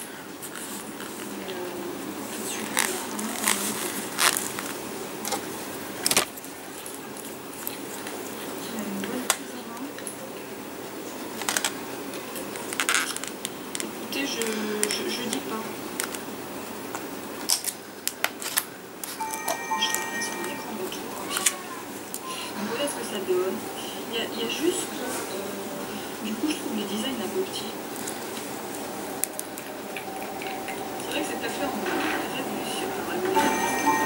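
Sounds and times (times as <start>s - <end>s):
brief ringing tone: 19.2s - 21.6s.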